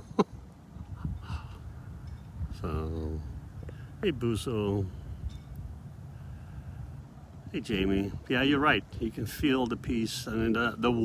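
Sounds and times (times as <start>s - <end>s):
wind buffeting microphone: 0.3s - 11.0s
faint hiss: 0.8s - 11.0s.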